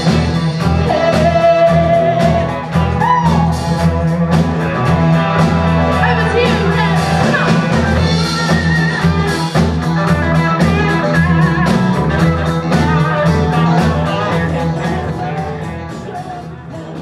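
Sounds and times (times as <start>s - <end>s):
funk band playing live: 0.0s - 17.0s
woman singing: 0.8s - 3.5s.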